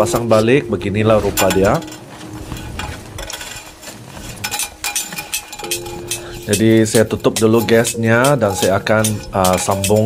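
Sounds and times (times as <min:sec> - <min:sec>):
metal lantern parts clinking: 0:01.3 - 0:10.0.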